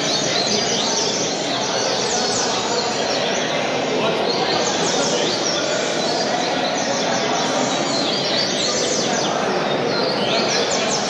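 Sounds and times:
birds chirping and singing: 0.0 - 11.0.

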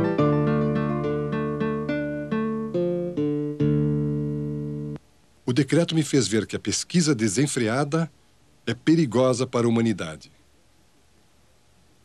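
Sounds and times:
plucked guitar notes: 0.0 - 5.0.

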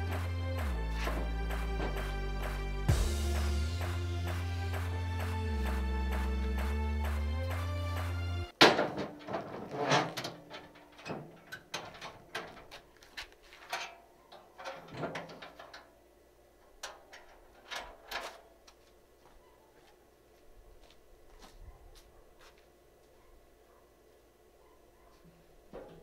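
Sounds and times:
background music: 0.0 - 8.6
steel doors clanging shut: 8.6 - 12.8, 14.6 - 15.9
metal clanks and latch rattles: 8.6 - 12.9, 13.6 - 15.9, 16.7 - 18.4.

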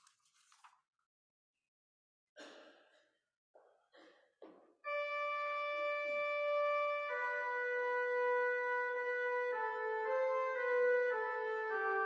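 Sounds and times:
organ chords: 4.9 - 12.0.

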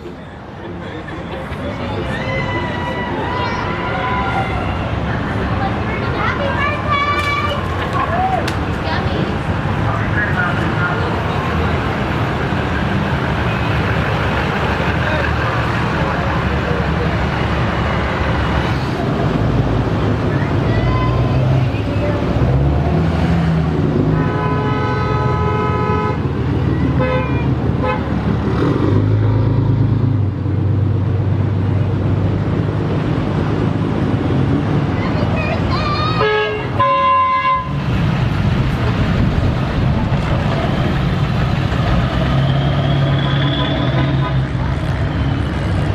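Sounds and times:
vehicle engines rumbling: 0.0 - 45.9
car horn honking: 24.2 - 26.3, 26.9 - 28.2, 36.2 - 37.8.

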